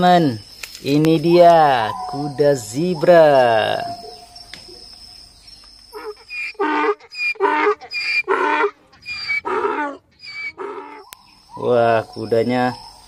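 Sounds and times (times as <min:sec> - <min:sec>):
zebra barking calls: 0:01.1 - 0:04.9, 0:05.9 - 0:13.0.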